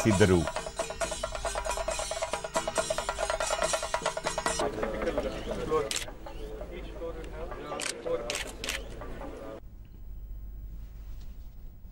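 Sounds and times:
murmur of voices: 0:04.6 - 0:09.6
camera shutter clicks: 0:05.9 - 0:06.1, 0:07.8 - 0:08.9.

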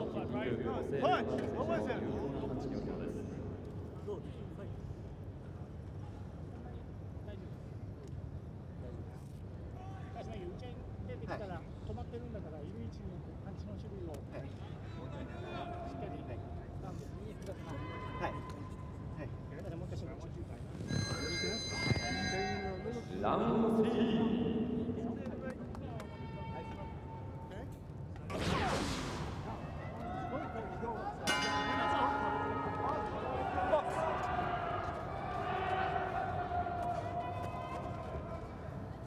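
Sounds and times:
boxing ring bell ringing: 0:20.9 - 0:23.2, 0:31.3 - 0:33.2.

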